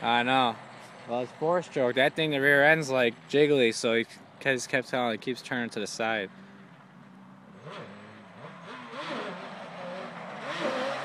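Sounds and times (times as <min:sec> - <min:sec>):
quad bike engine revving: 0:05.7 - 0:11.0.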